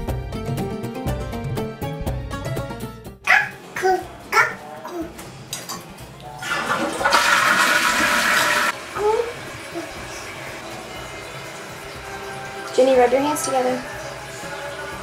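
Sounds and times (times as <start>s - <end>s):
toilet flushing: 6.3s - 15.0s.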